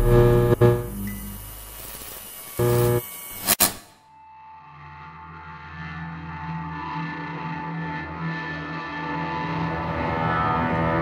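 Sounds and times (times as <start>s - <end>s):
sustained ambient tone: 0.0s - 3.4s.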